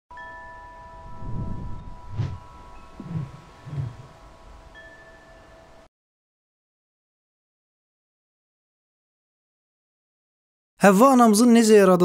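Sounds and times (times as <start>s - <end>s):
bell-like chime tones: 0.1s - 5.9s
low swells: 1.0s - 4.6s.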